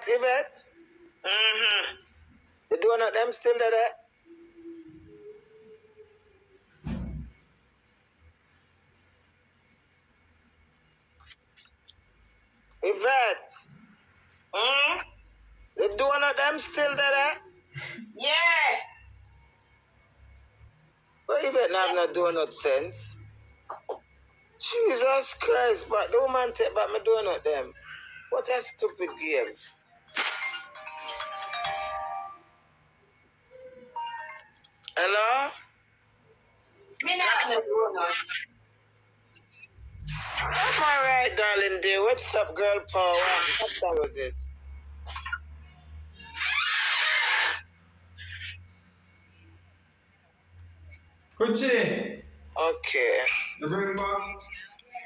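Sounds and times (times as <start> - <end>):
electronic chime jingle: 30.5 - 32.6.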